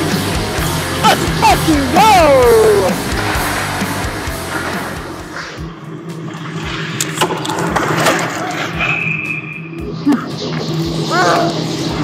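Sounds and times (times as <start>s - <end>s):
rock music: 0.0s - 7.2s.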